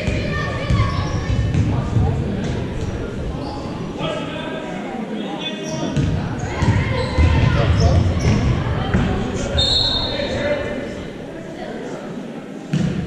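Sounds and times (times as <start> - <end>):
voices of players and spectators: 0.0 - 13.0
referee's whistle: 9.6 - 10.2.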